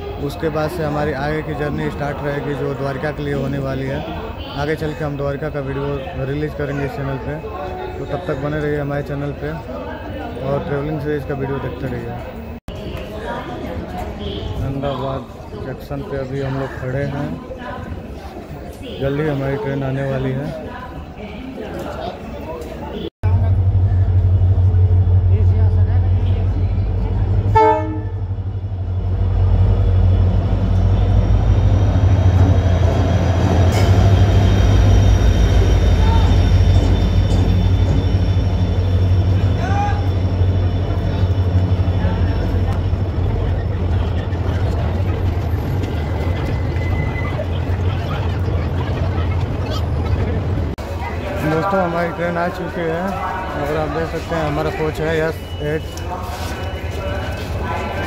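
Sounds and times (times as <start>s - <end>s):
train rumbling past: 23.2s - 58.0s
train horn toot: 27.5s - 28.4s.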